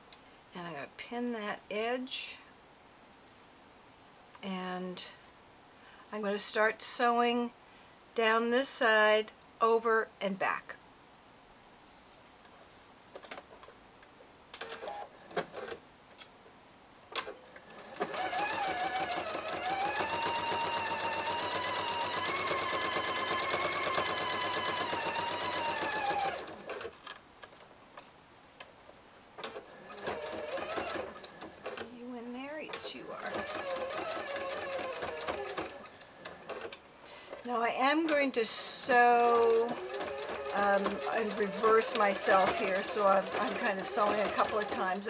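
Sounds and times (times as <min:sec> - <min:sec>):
sewing machine stitching: 0:17.6 - 0:27.0, 0:29.4 - 0:32.0, 0:32.6 - 0:36.8, 0:38.9 - 0:45.0.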